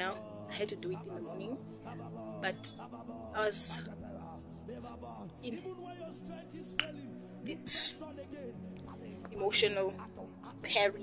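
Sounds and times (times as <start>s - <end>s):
steady low background tone: 0.0s - 11.0s.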